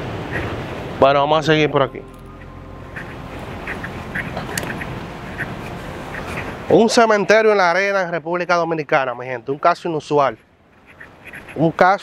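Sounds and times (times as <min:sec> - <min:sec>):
steady outdoor hiss: 0:00.0 - 0:12.0.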